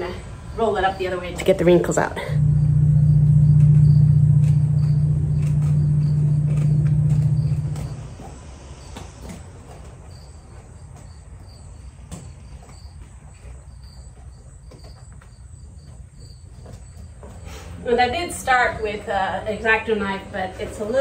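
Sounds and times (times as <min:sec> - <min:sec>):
crickets chirping: 0:00.0 - 0:21.0
low motor hum: 0:00.3 - 0:09.8.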